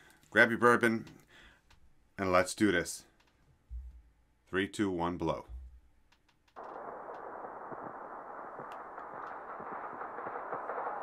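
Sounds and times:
faint clicks: 3.1s - 3.4s, 6.1s - 7.3s, 8.6s - 10.6s.

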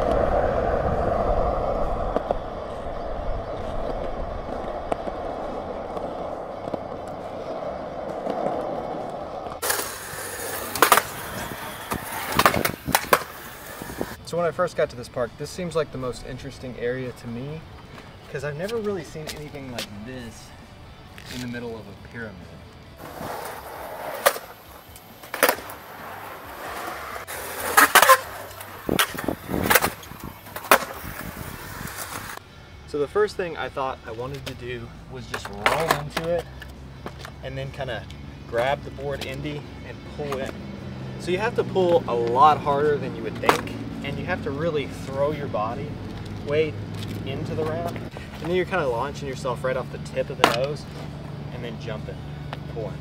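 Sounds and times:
skateboard wheels rolling on concrete: 0.0s - 53.0s
skateboard clacking on concrete: 3.8s - 14.1s, 23.0s - 32.4s, 35.3s - 36.4s, 43.4s - 43.7s, 50.4s - 50.8s.

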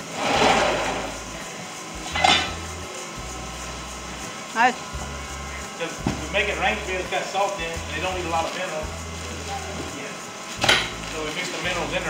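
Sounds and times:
rushing feed noise: 0.0s - 4.4s.

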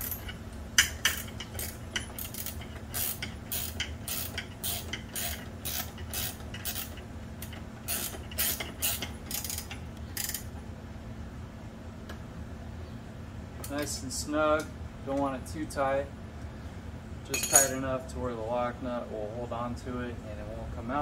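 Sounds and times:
steady low hum: 0.0s - 21.0s
metallic clicks and clinks: 17.3s - 17.8s.

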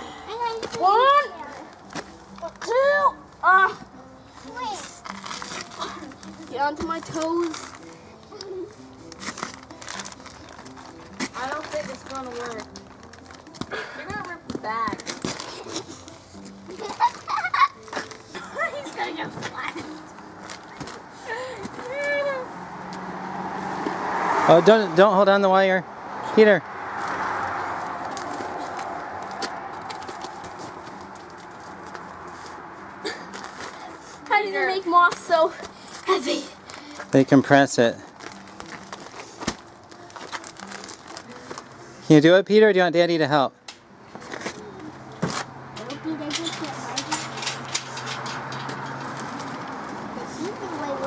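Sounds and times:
plastic-wrapped bale scraping on asphalt: 3.7s - 22.6s, 26.9s - 42.5s.

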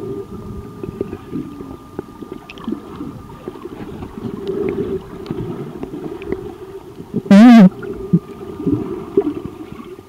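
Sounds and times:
faint high hum: 0.0s - 10.0s
bubbly blips: 7.3s - 7.7s.

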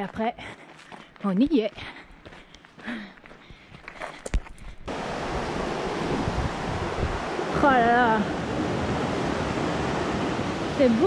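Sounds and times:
footsteps on gravel: 0.0s - 4.8s
mountain stream rushing: 4.9s - 11.0s.

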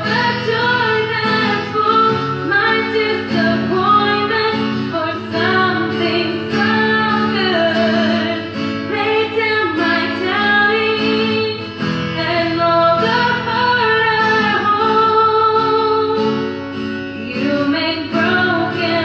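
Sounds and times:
acoustic guitar: 0.0s - 19.0s
person singing into a microphone: 0.0s - 19.0s.

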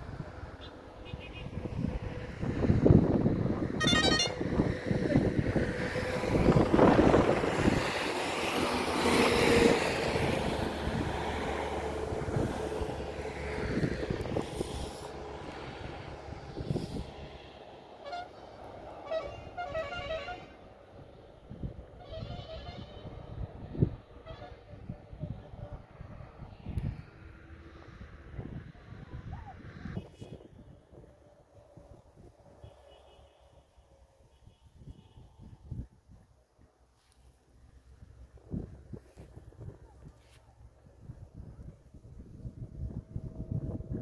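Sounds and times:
wind and road noise in vehicle: 0.0s - 44.0s.

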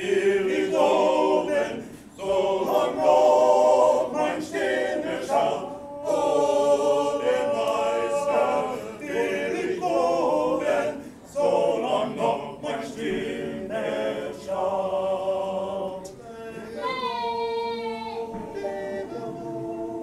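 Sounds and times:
male chorus singing a cappella: 0.0s - 20.0s
singers breathing: 1.8s - 2.2s, 11.0s - 11.3s.

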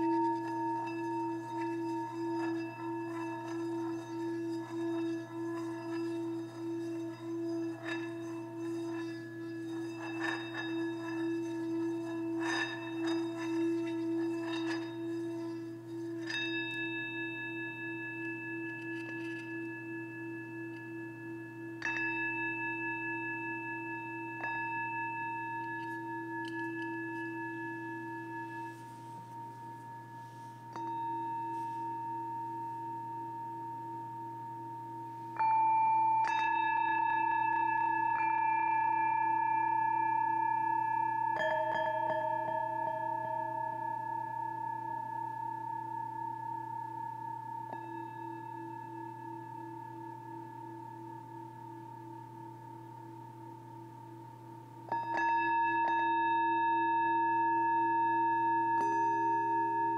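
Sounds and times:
singing bowl strikes: 0.0s - 54.2s, 54.9s - 59.9s
singing bowl humming: 0.0s - 59.9s.

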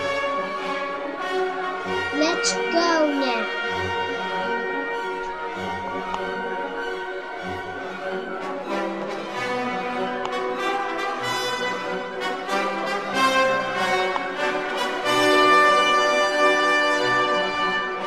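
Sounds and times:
orchestral music with brass: 0.0s - 18.0s.

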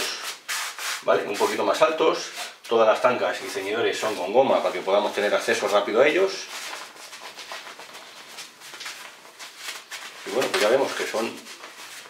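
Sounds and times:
nylon gloves rustling: 0.3s - 12.0s.

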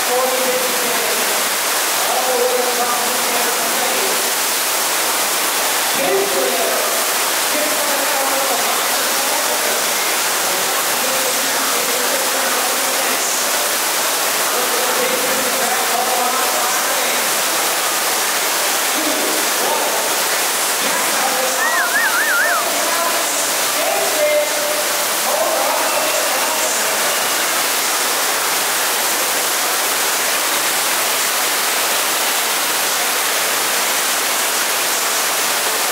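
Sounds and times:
water rushing loudly: 0.0s - 35.9s.

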